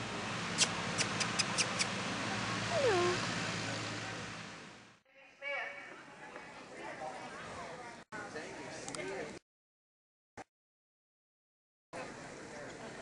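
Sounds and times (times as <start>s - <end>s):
dog whining: 2.7s - 3.2s.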